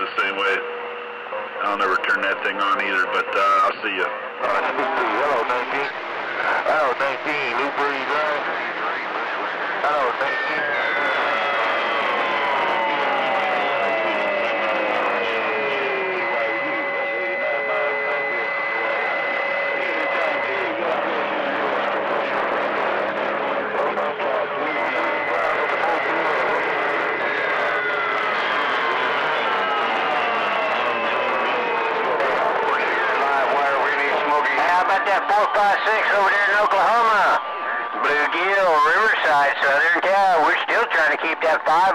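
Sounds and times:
radio static: 0:00.0 - 0:41.9
weak garbled voices: 0:01.5 - 0:41.9.

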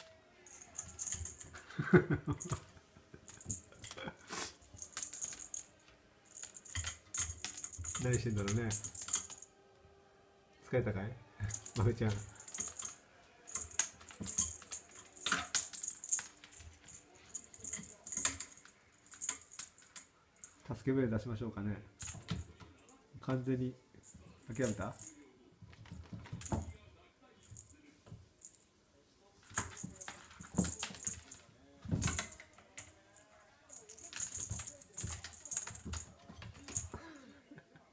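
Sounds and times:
cat claws clicking on wood floor: 0:04.7 - 0:09.4, 0:29.4 - 0:33.0, 0:33.7 - 0:37.0.

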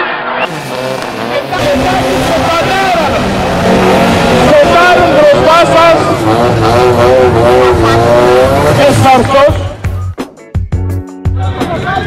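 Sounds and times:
car engine running: 0:00.5 - 0:10.0.

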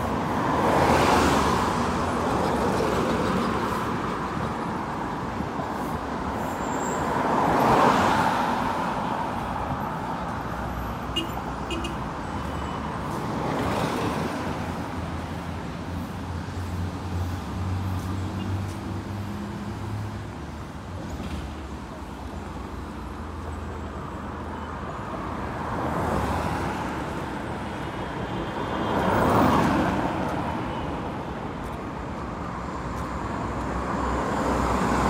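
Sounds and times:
steady traffic rumble: 0:00.0 - 0:35.0
vehicles passing close by: 0:00.0 - 0:35.0.

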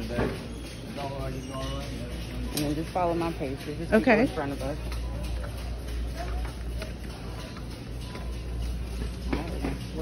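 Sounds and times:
shopping cart rattling: 0:00.0 - 0:10.0.

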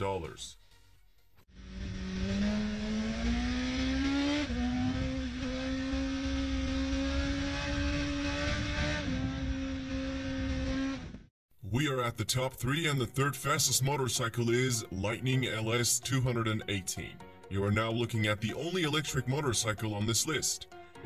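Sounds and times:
motorcycle engine accelerating: 0:01.5 - 0:11.3.

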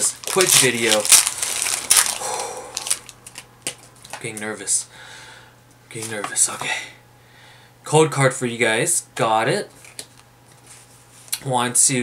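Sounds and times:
foil wrapper crinkling: 0:00.0 - 0:04.2.

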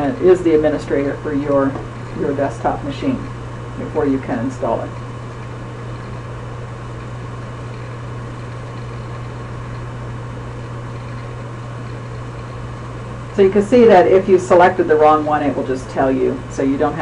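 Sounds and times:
constant hiss: 0:00.0 - 0:17.0
low hum: 0:00.0 - 0:17.0.

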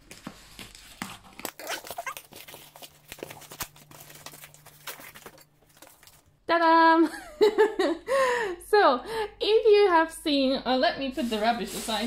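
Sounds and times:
paper and cardboard rustling: 0:00.0 - 0:06.3, 0:11.2 - 0:12.0.

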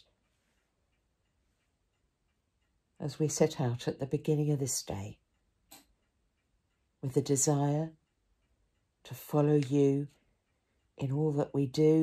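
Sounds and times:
clock ticking softly: 0:00.0 - 0:12.0.

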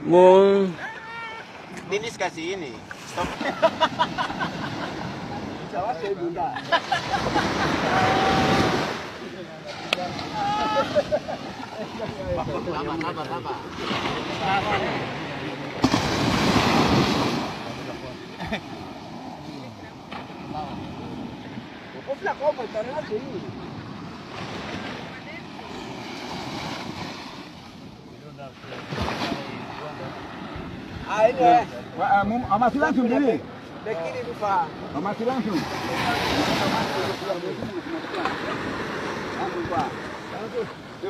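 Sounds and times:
ocean surf washing onto beach: 0:00.0 - 0:41.0
faint voices talking: 0:07.7 - 0:26.5
people talking: 0:07.8 - 0:15.9, 0:31.1 - 0:38.6.

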